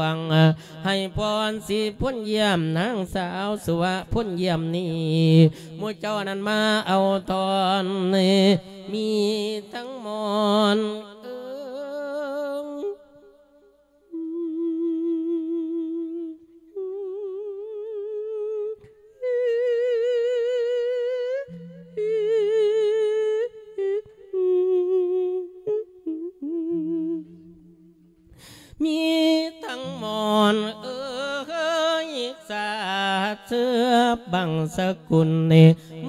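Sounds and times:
man singing with vibrato: 0.0s - 36.0s.

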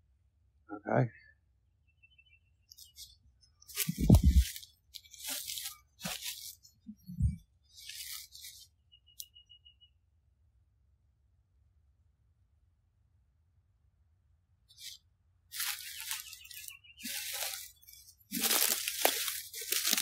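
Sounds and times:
footsteps crunching through leaves: 3.7s - 6.7s, 7.7s - 8.6s, 14.8s - 20.0s.

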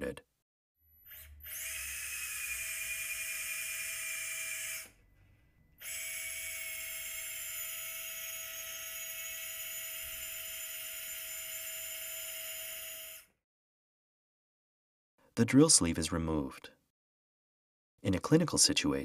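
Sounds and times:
power drill whining: 1.0s - 5.0s, 5.8s - 13.3s.

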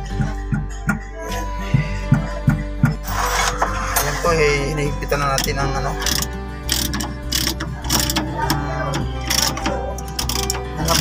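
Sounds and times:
ratchet wrench clicking: 5.4s - 8.2s, 8.9s - 11.0s.

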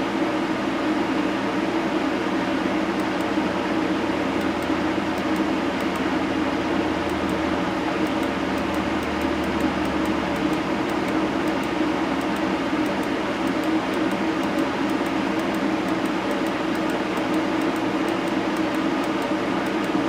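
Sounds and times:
fan whirring: 0.0s - 20.0s.

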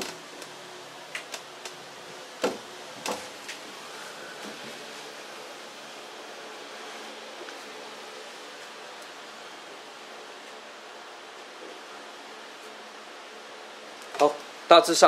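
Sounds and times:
steady background hiss: 0.0s - 15.0s.

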